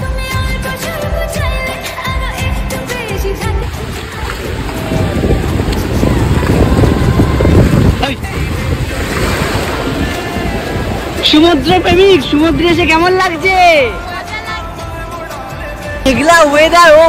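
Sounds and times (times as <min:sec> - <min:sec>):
background music: 0:00.0 - 0:17.0
wind buffeting microphone: 0:03.5 - 0:13.1
ocean surf washing in: 0:03.6 - 0:13.3.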